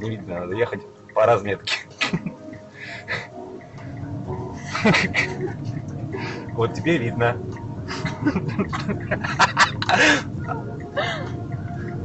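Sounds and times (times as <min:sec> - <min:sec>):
voice: 0:00.0 - 0:02.4, 0:06.6 - 0:07.4
car engine and road drone: 0:00.0 - 0:12.0.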